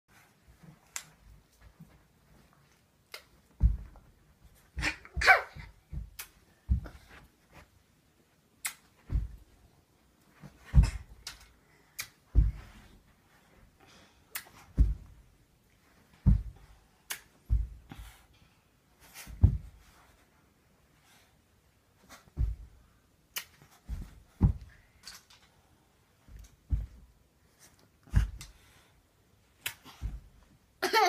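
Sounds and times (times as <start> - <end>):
dull thuds: 3.6 - 4.1, 4.7 - 7.2, 9.0 - 9.6, 10.4 - 11.2, 12.3 - 12.9, 14.7 - 15.3, 16.1 - 16.7, 17.4 - 18.0, 19.3 - 19.9, 22.3 - 22.9, 23.8 - 24.9, 26.3 - 27.2.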